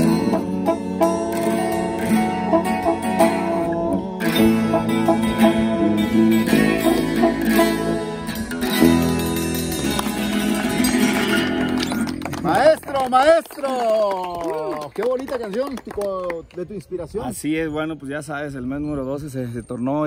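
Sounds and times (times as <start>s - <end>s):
brass and drums: 0.0s - 9.1s
acoustic guitar strumming: 0.0s - 12.3s.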